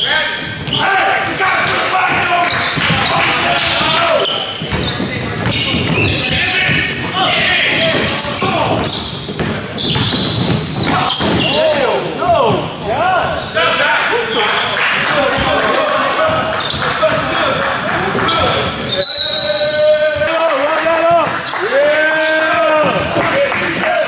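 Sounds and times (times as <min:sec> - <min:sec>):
people shouting in echoing hall: 0:00.0 - 0:09.0, 0:10.7 - 0:24.0
basketball bouncing on wooden floor: 0:00.4 - 0:11.8, 0:22.7 - 0:23.3.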